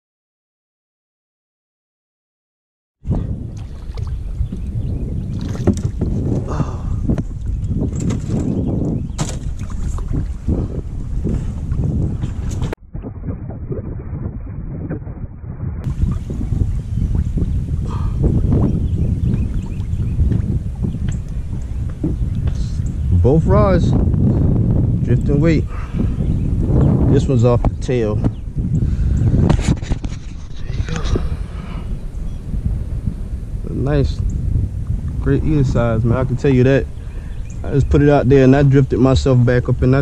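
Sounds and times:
wind buffeting microphone: 3.0 - 40.0
water lapping at boat: 3.1 - 15.2, 15.9 - 23.0
knocks and rustles: 7.9 - 10.3.

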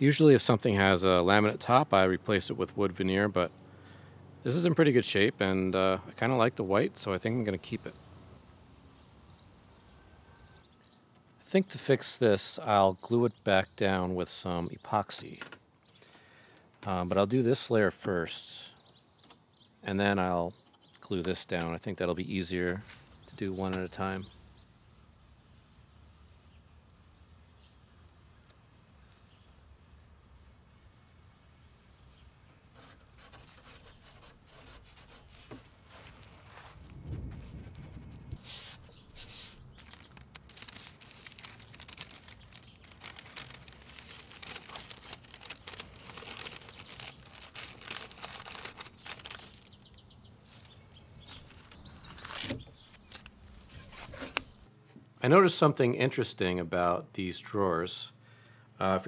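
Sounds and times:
tape crackling and tearing: 32.8 - 54.6.

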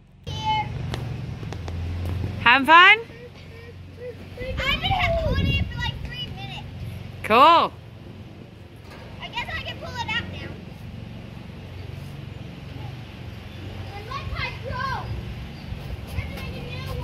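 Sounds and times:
distant children calling and chattering: 0.0 - 17.0.

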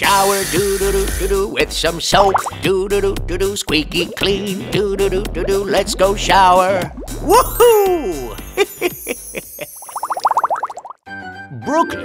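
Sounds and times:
cartoon sparkle sound effect: 7.3 - 10.3.

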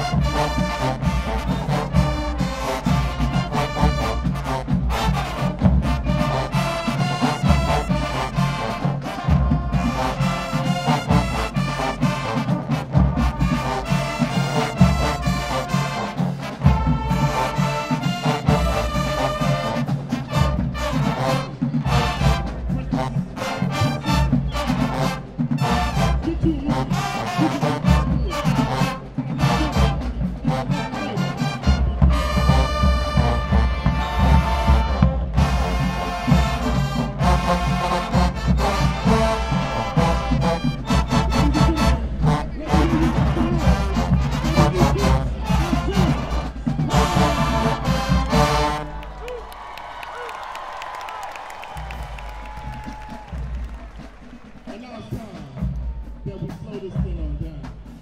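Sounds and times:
driving drum beat: 0.0 - 58.0
marching band playing: 0.0 - 58.0.

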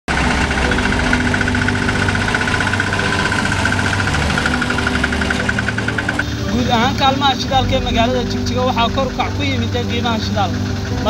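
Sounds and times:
auto-rickshaw engine idling: 0.1 - 11.0.

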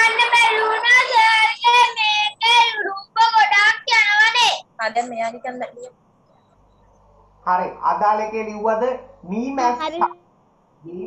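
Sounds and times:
child singing: 0.0 - 3.2.

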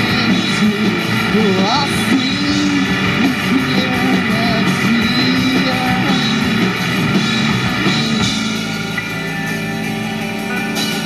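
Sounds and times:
man singing: 0.0 - 6.8
distorted electric guitar: 0.0 - 11.0.

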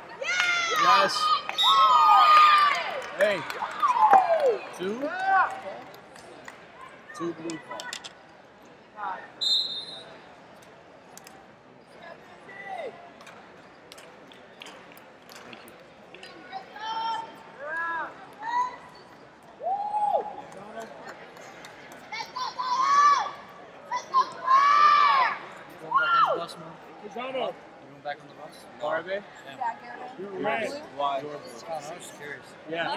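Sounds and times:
sports hall ambience: 0.0 - 32.9
referee's whistle blast: 9.4 - 10.2.

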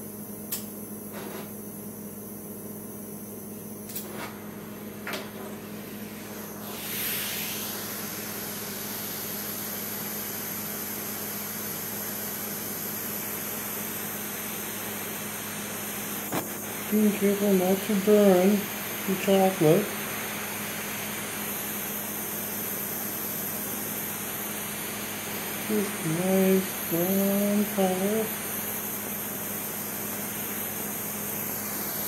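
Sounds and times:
blowtorch flame hissing: 3.4 - 32.0
blowtorch igniter clicks: 3.9 - 4.3.

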